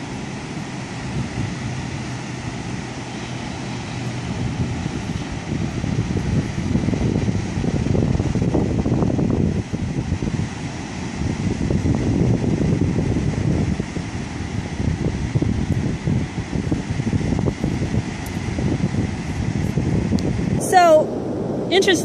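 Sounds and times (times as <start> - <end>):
ocean surf breaking: 0.0 - 22.0
wind buffeting microphone: 0.0 - 22.0.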